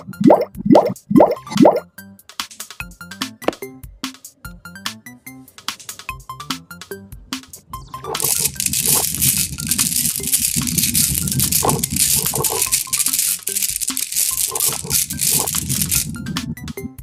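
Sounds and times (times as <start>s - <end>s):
water beads rattling on hard surface: 8.1s - 16.2s.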